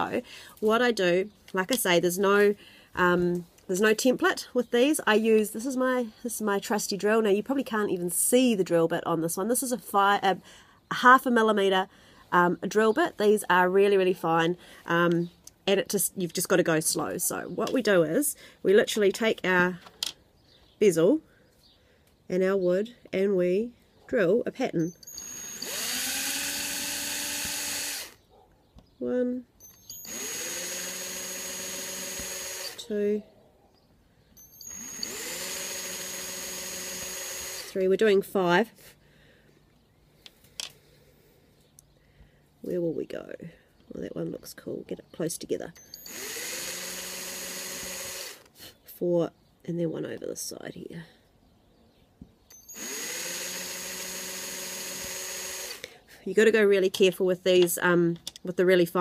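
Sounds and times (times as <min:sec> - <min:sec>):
power drill boring into wood: 0:24.9 - 0:28.2, 0:29.6 - 0:32.9, 0:34.4 - 0:37.8, 0:45.8 - 0:48.5, 0:52.5 - 0:56.0.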